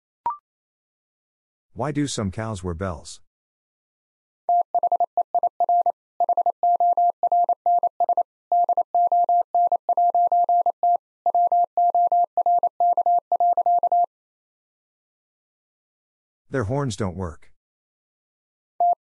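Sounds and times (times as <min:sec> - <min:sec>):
morse code tone: 0:04.5 - 0:14.1.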